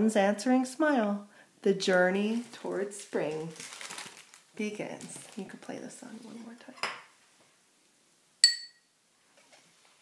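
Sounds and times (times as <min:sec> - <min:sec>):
bright ringing clink: 0:08.4 - 0:08.9.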